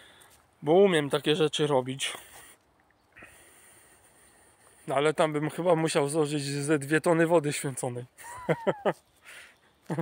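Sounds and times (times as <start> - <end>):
man breathing: 0.0 - 0.4, 2.2 - 4.9, 9.2 - 9.9.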